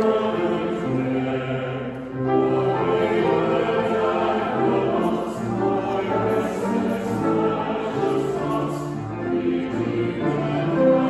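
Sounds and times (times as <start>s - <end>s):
choir singing held notes: 0.0s - 11.0s
grand piano: 0.0s - 11.0s.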